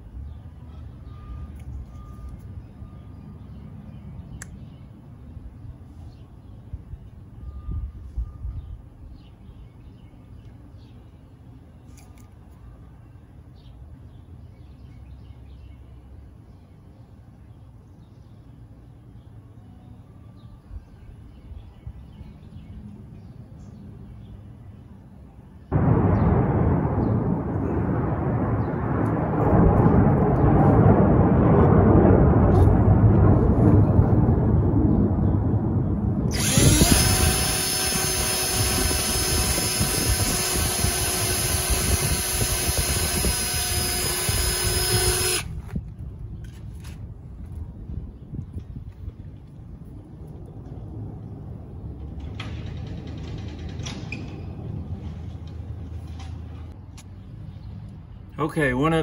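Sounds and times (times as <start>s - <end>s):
cordless drill driving a screw: 36.3s - 45.5s.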